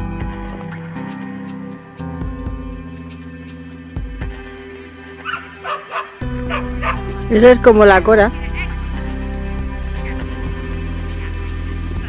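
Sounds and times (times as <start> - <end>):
background music sustained tones: 0.0 - 12.0
dog barking: 5.2 - 7.0.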